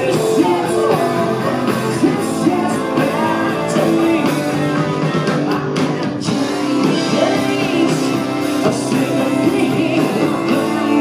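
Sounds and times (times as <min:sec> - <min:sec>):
distorted electric guitar: 0:00.0 - 0:11.0
drums with cymbal crashes: 0:00.0 - 0:11.0
woman singing lead vocal: 0:00.0 - 0:11.0.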